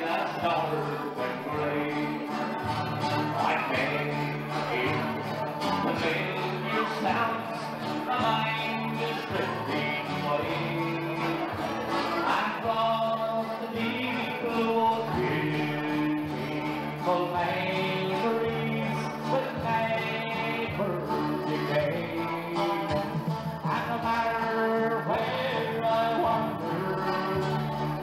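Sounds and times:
live band playing dance music: 22.2s - 24.0s.

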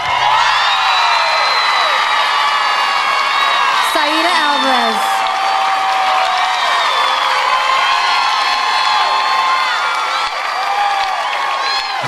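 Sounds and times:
applause: 0.0s - 12.0s
audience cheering and screaming: 0.0s - 12.0s.

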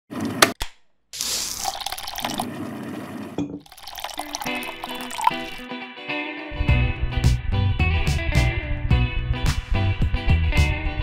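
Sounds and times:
water pouring: 1.2s - 5.6s.

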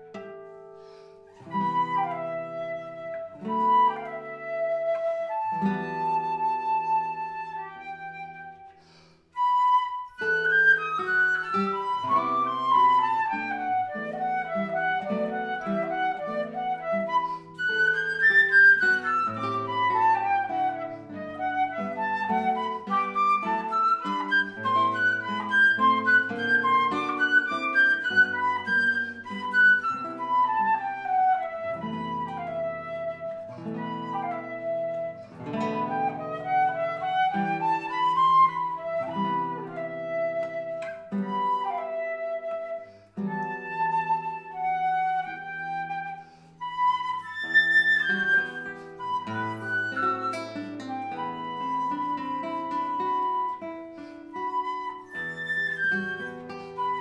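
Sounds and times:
flute melody: 0.0s - 57.0s
picked classical guitar: 0.0s - 57.0s.

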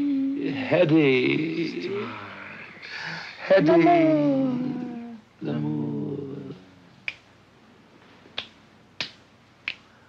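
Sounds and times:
finger snaps: 7.0s - 7.3s, 8.3s - 10.0s.

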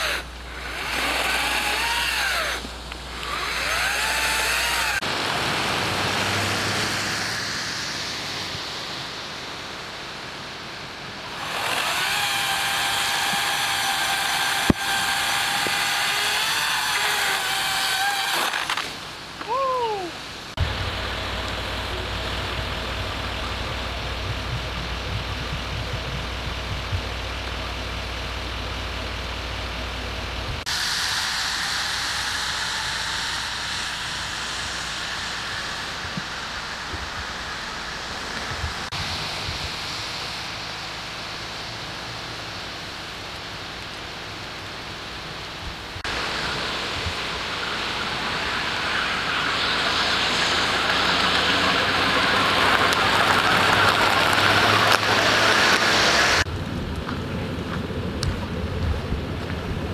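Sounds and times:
rain hissing: 0.0s - 56.9s
low idling engine hum: 19.5s - 59.9s.

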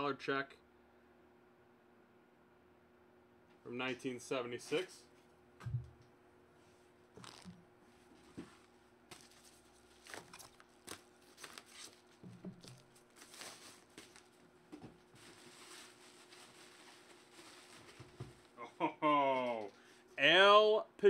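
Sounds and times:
bubble wrap and envelopes crinkling: 7.2s - 7.6s, 8.3s - 18.6s.

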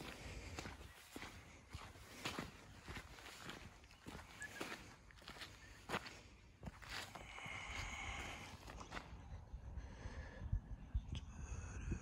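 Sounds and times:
footsteps on dirt: 0.0s - 9.2s.

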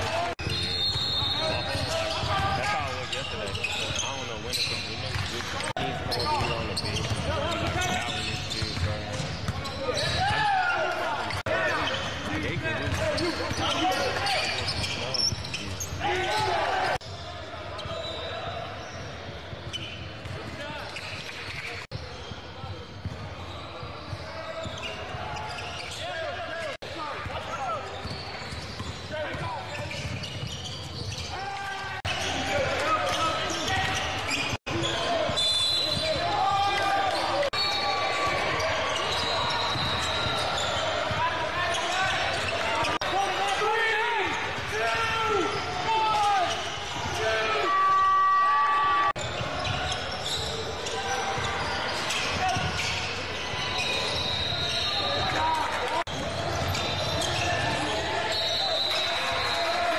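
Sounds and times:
players and spectators shouting: 9.7s - 18.8s, 31.2s - 59.9s.

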